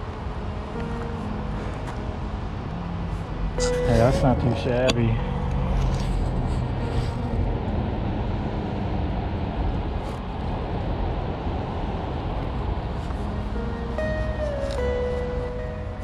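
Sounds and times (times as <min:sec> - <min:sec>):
steady rushing outdoor noise: 0:00.0 - 0:16.0.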